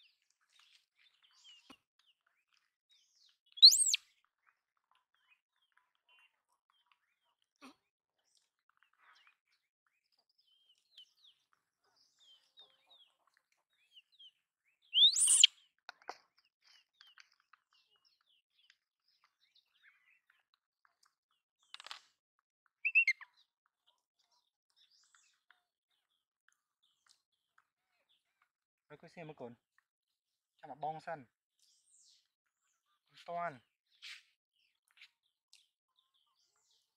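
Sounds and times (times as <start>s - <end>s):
faint high chirps: 3.6s - 4.0s, 15.0s - 15.5s, 22.9s - 23.2s
high call sliding upward: 15.0s - 15.5s.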